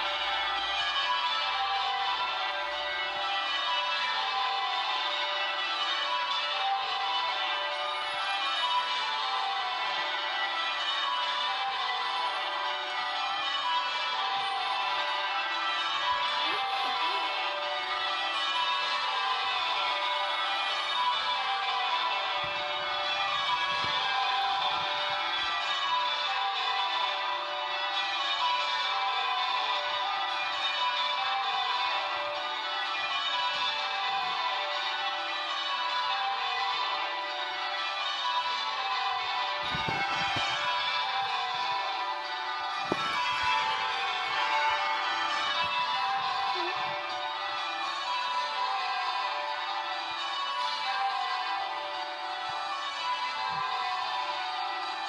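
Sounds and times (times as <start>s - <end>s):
church bells ringing a peal: 0.0s - 55.0s.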